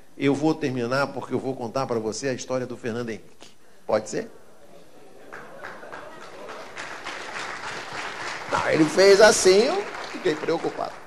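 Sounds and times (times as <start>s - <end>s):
audience applauding: 5.2s - 11.0s.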